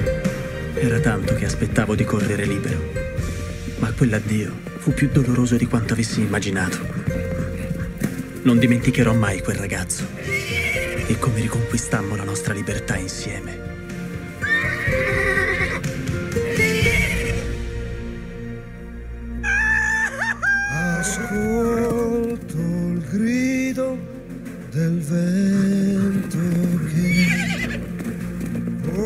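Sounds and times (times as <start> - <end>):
film score music: 0.0 - 29.0
horse whinnying: 10.2 - 11.2, 14.3 - 17.5, 19.4 - 22.4, 27.0 - 28.5.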